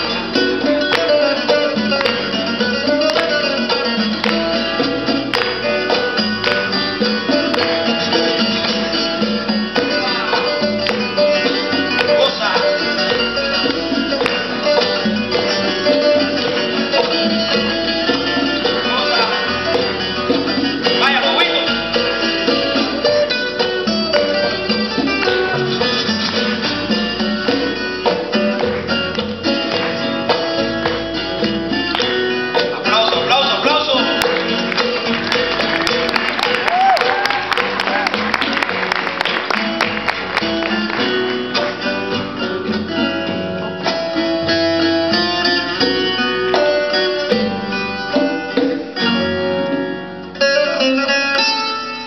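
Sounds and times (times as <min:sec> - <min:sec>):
acoustic guitars playing: 0:00.0 - 0:52.0
congas: 0:00.0 - 0:52.0
upright double bass: 0:00.0 - 0:52.0.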